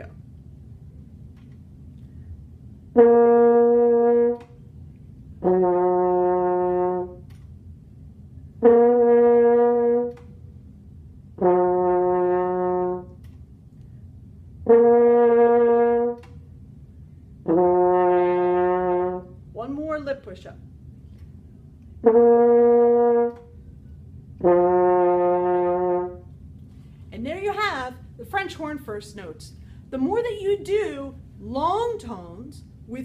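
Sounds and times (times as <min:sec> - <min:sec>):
breaths: 0:02.0 - 0:02.4, 0:26.7 - 0:27.2, 0:29.6 - 0:30.0
french horn held notes: 0:02.8 - 0:07.3, 0:08.6 - 0:10.4, 0:11.3 - 0:13.2, 0:14.6 - 0:16.4, 0:17.4 - 0:20.0, 0:21.9 - 0:28.2.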